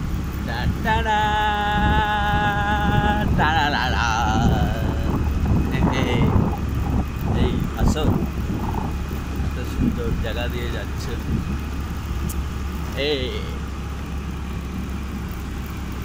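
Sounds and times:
wind rumble on microphone: 0.0 - 13.0
motorbike running along road: 0.0 - 16.0
person singing: 0.5 - 5.2.

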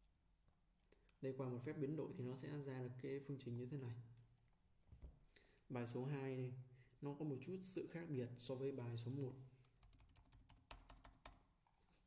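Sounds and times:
computer keyboard clicking: 9.1 - 11.4.

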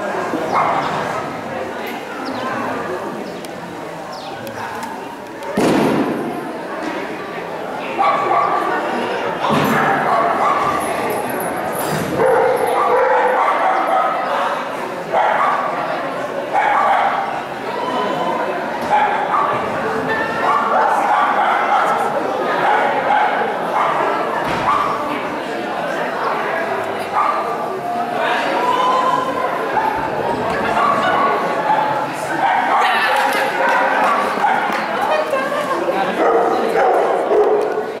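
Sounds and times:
people talking: 0.0 - 38.0
dog barking and yipping: 12.2 - 14.2.

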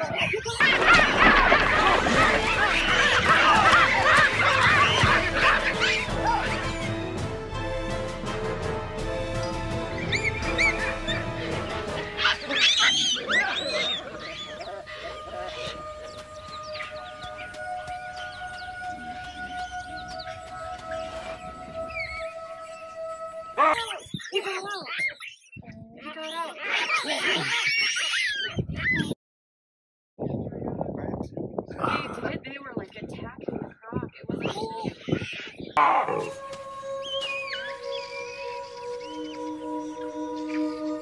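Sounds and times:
baboons calling: 0.0 - 6.9, 10.0 - 29.1, 34.4 - 41.0
background music held notes: 0.6 - 23.8, 35.8 - 41.0
baboon squeals and screams: 2.1 - 6.6, 12.2 - 15.9, 23.6 - 29.2.

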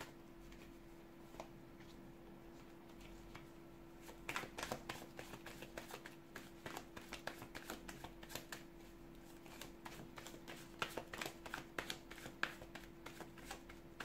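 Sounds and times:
faint steady hum: 0.0 - 14.0
cards being shuffled: 4.0 - 8.6, 9.4 - 14.0.

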